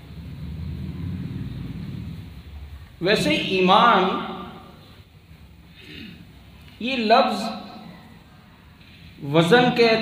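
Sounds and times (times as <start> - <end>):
low rumble: 0.0 - 3.0.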